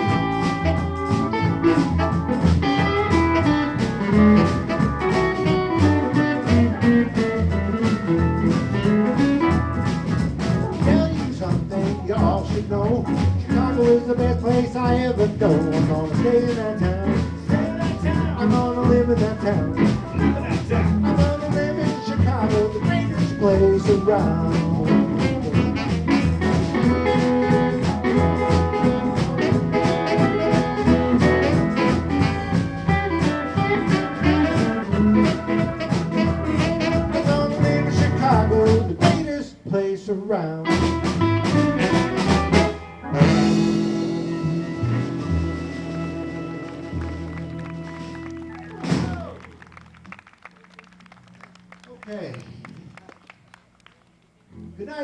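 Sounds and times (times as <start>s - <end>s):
saxophone: 0.0s - 11.2s, 16.2s - 39.3s, 40.6s - 49.4s
electric guitar: 0.0s - 39.6s, 40.6s - 53.2s
drum kit: 0.0s - 39.7s, 40.6s - 49.7s.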